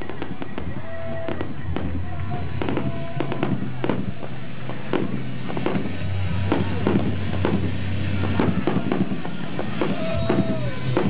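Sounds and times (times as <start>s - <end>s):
fireworks bangs and crackles: 0.0s - 11.0s
music: 0.0s - 11.0s.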